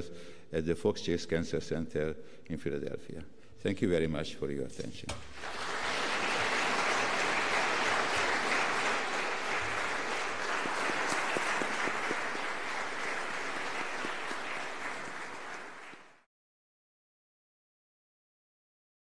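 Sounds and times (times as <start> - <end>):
large audience applauding: 5.2 - 16.3.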